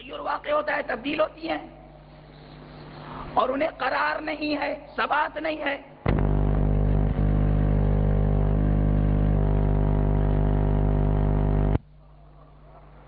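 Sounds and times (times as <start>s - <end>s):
low electrical buzz: 6.0s - 12.2s.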